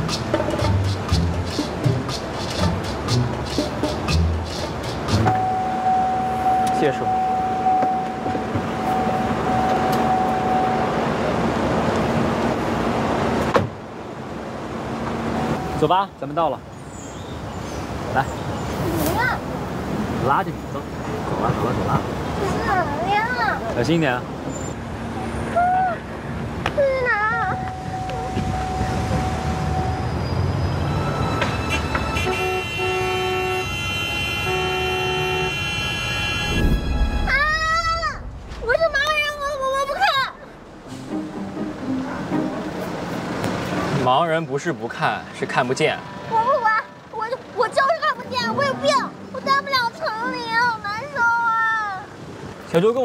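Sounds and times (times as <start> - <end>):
road and cabin noise: 0.0 - 53.0
traffic rumble: 0.0 - 53.0
car horns honking: 5.1 - 11.2, 27.6 - 37.3.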